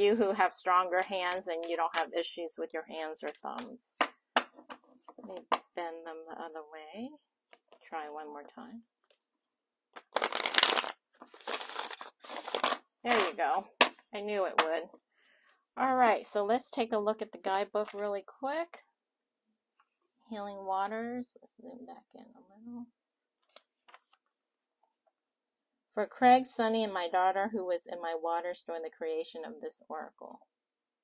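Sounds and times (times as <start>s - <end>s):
book page turning: 10.0s - 13.3s, 17.8s - 18.1s, 23.4s - 24.3s
cards being riffle shuffled: 10.0s - 14.0s.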